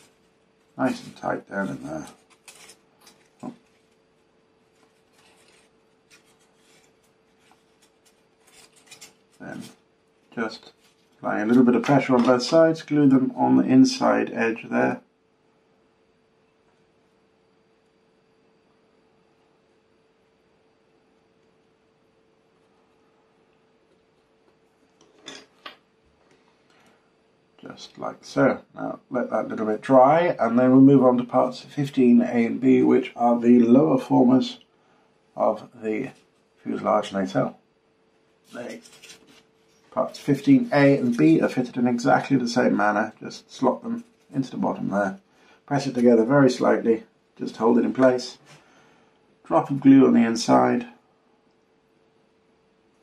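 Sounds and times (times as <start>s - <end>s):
faint steady hum: 0.0s - 53.0s.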